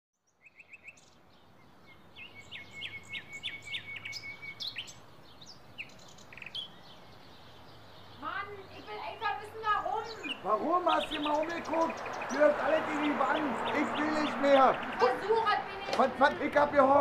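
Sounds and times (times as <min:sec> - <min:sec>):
birds chirping and singing: 0:00.2 - 0:17.0.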